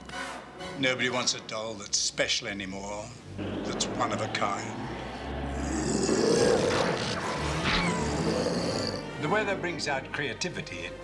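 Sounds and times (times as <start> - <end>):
monster roar: 4.7 - 9.2.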